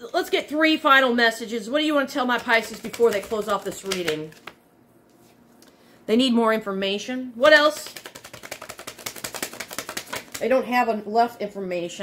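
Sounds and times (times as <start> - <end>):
cards being shuffled: 2.4 - 4.6, 7.7 - 10.5.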